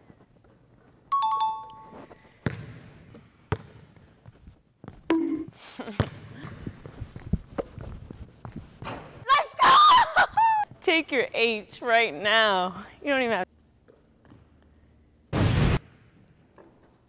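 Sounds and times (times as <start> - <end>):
two-note ding-dong chime: 1.1 - 2.0
basketball bouncing on wooden floor: 2.4 - 4.0.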